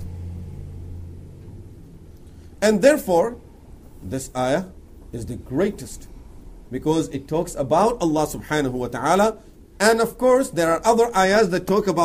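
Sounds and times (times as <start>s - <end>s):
low rumble: 0.0s - 2.7s
person speaking: 2.6s - 6.1s, 6.7s - 12.0s.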